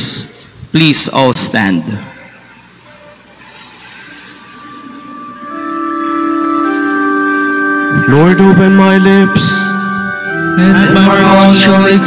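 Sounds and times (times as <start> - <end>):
sustained organ chord: 3.4 - 12.0.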